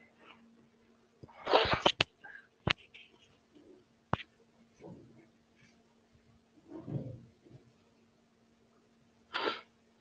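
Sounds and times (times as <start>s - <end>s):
person sneezing: 1.4s - 1.9s, 9.3s - 9.7s.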